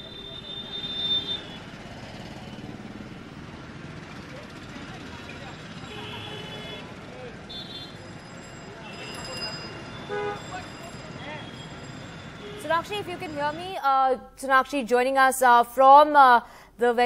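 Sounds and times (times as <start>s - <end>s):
traffic noise: 0.0s - 14.8s.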